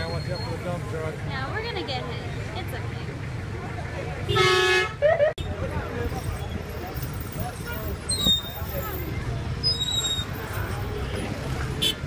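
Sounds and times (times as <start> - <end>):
vehicle horn blast: 4.3 - 5.0.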